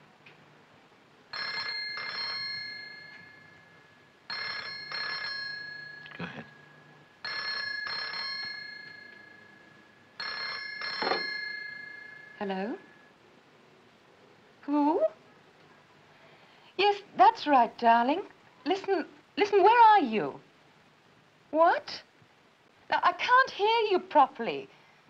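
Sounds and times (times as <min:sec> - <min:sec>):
telephone ringing: 0:01.3 - 0:13.1.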